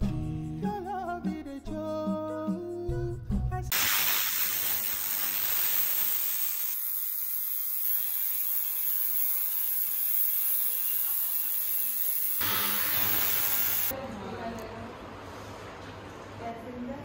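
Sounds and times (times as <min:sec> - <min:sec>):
ultrasonic cleaner hissing and buzzing: 0:03.7 - 0:13.9.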